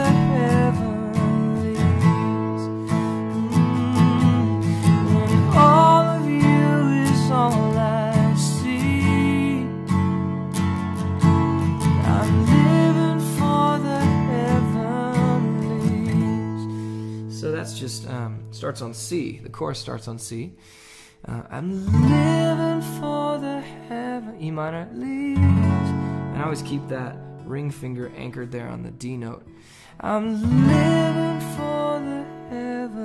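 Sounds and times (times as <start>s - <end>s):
man singing: 0.0s - 10.0s, 11.8s - 20.4s, 21.2s - 33.0s
acoustic guitar strumming: 0.0s - 20.0s, 21.4s - 33.0s.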